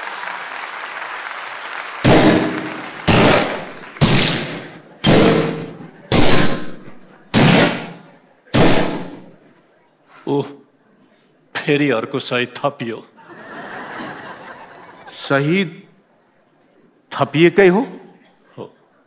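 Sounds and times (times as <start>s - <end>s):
applause: 0.0s - 4.0s
heavy ringing strikes: 2.0s - 7.9s.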